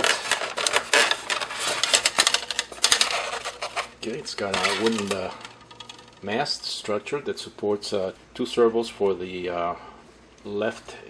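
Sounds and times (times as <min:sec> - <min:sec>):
plastic wrap rustling: 0:00.0 - 0:06.3
dense irregular clicks: 0:00.0 - 0:06.4.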